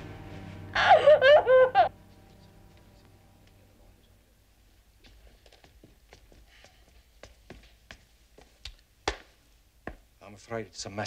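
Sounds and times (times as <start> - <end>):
footsteps on wooden stairs: 5.0 - 10.1.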